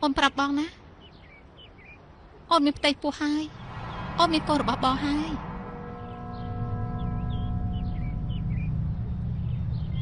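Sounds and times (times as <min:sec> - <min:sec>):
steady low rumble: 0:03.5 - 0:10.0
high chirps: 0:05.6 - 0:10.0.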